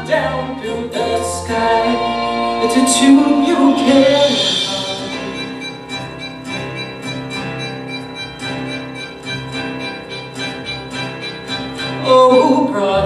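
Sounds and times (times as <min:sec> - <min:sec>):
instrumental show tune accompaniment: 0:00.0 - 0:13.0.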